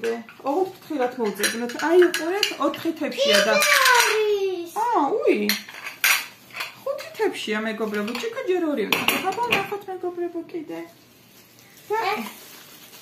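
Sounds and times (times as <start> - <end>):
ceramic plates clinking: 1.2 - 4.2.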